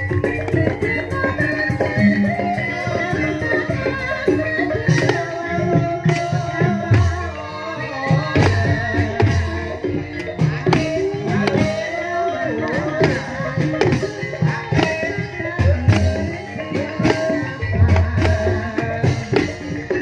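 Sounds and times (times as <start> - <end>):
drum beats: 0.0 - 20.0
gamelan melody: 0.0 - 20.0
person singing: 0.0 - 20.0.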